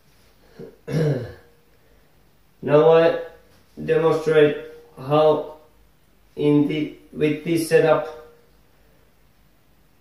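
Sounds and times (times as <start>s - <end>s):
man clearing his throat: 0.6s - 1.5s.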